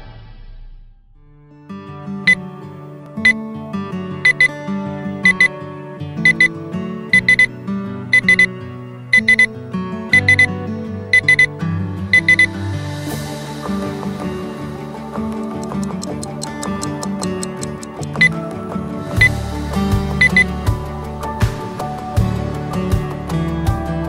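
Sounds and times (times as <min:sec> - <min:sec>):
background music: 0:00.0 - 0:24.0
alarm clock beeping: 0:04.2 - 0:04.5, 0:05.2 - 0:05.5, 0:06.2 - 0:06.5, 0:07.1 - 0:07.5, 0:08.1 - 0:08.5, 0:09.1 - 0:09.5, 0:10.2 - 0:10.5, 0:11.1 - 0:11.5, 0:12.1 - 0:12.5, 0:20.2 - 0:20.5.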